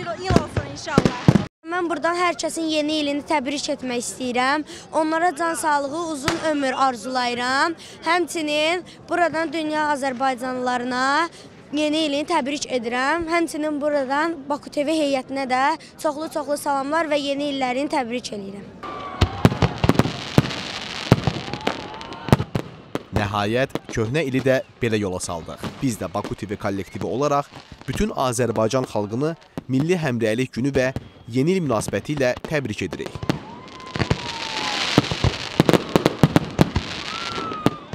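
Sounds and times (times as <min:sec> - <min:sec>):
fireworks bangs: 0:00.0 - 0:01.5, 0:18.8 - 0:30.1, 0:30.8 - 0:37.9
fireworks crackle: 0:00.2 - 0:01.5, 0:19.2 - 0:30.0, 0:30.8 - 0:37.9.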